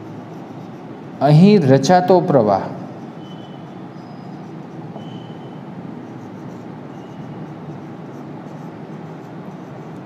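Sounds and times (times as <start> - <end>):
marker writing on whiteboard: 0.0 - 1.6, 2.8 - 10.0
steady background noise: 0.0 - 10.0
marker tip squeaks: 3.0 - 10.0.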